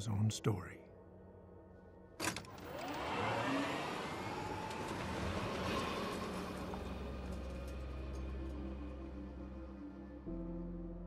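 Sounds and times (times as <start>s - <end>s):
golf cart motor whine: 2.2s - 8.1s
tyres rumbling: 2.2s - 8.8s.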